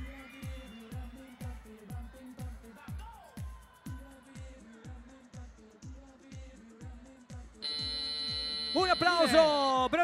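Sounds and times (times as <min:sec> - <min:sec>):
pop dance music over speakers: 0:00.0 - 0:10.0
electronic buzzer tone: 0:07.6 - 0:09.8.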